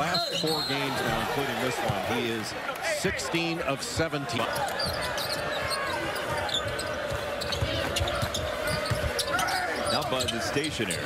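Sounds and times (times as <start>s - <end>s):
arena crowd murmur: 0.0s - 11.0s.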